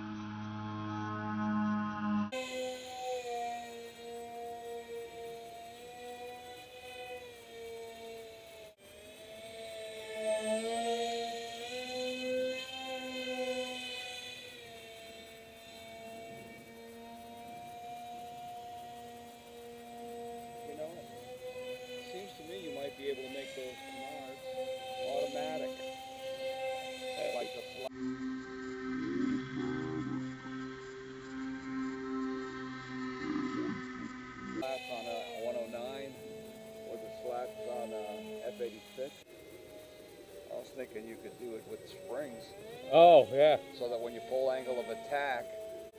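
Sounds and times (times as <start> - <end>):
slowed model jet motors droning: 0.0 - 45.9.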